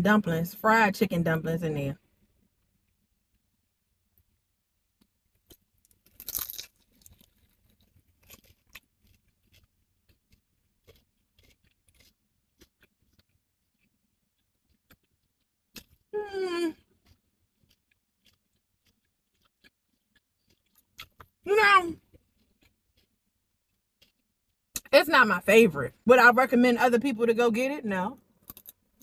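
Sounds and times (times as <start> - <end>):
crunchy chewing: 5.0 - 16.1, 16.7 - 21.4, 22.0 - 24.9, 28.2 - 29.0
crunchy bite: 5.4 - 13.9, 16.7 - 21.4.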